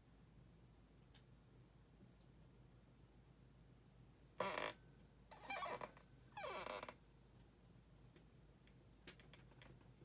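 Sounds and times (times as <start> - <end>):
squeaks on a whiteboard: 4.4 - 7.0.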